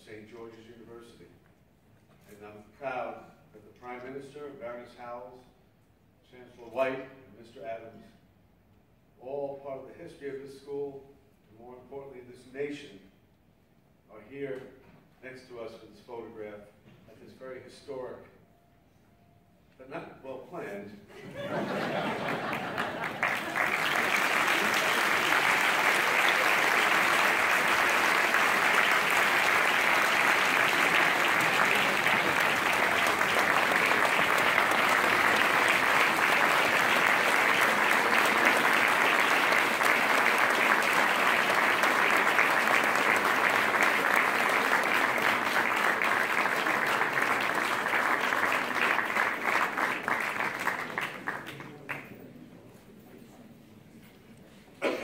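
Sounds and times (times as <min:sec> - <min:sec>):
audience applauding: 0:21.4 - 0:52.1.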